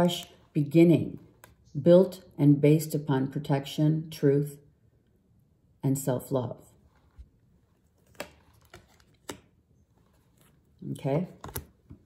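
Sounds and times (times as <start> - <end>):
cards clicking: 8.0 - 9.6, 11.4 - 12.0.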